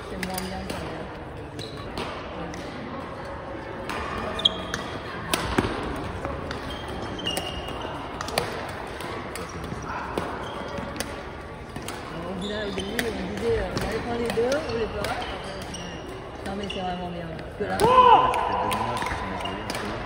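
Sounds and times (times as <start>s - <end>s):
voices: 0.0s - 20.0s
rackets striking shuttlecock: 3.8s - 20.0s
shoes squeaking on wooden floor: 15.4s - 17.0s.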